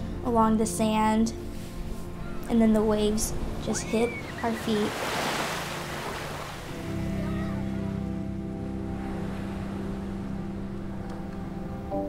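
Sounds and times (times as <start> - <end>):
surf washing over sand: 3.1 - 8.1
held music chord: 5.9 - 12.0.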